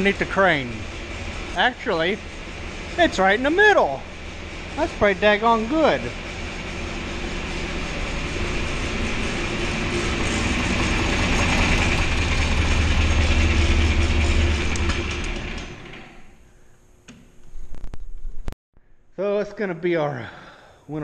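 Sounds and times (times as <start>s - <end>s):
tractor engine running: 0.0s - 16.4s.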